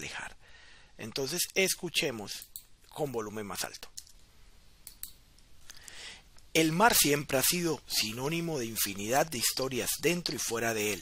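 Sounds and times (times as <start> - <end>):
low room hiss: 0.0 - 11.0
computer mouse clicks: 4.8 - 6.0.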